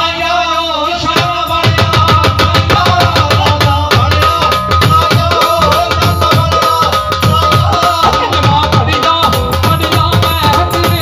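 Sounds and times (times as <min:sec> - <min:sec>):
dholak drumming: 0:00.0 - 0:11.0.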